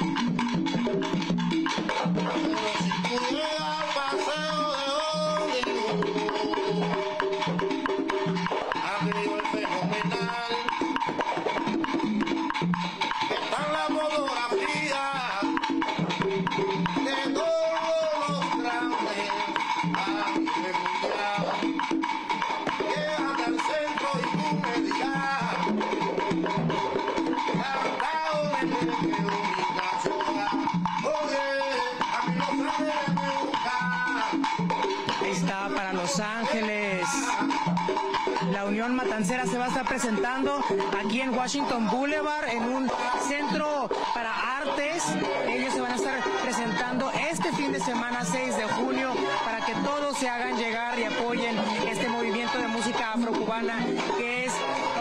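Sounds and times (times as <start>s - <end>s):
hand percussion: 0.0s - 55.0s
man singing into microphone: 1.9s - 7.8s, 8.4s - 11.0s, 13.3s - 21.9s, 22.6s - 26.0s, 27.4s - 37.8s, 38.4s - 55.0s.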